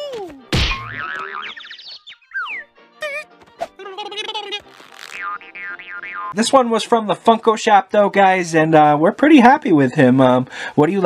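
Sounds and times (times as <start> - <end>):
cartoon music: 0.2 - 6.4
cartoon spring boing: 0.6 - 1.6, 5.2 - 6.4.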